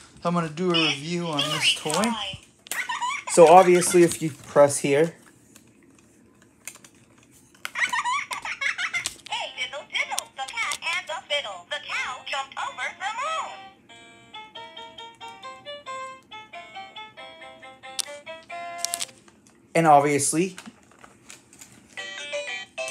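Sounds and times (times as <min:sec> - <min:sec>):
recorded voice from toy speaker: 0:00.7 - 0:02.4, 0:09.3 - 0:13.7.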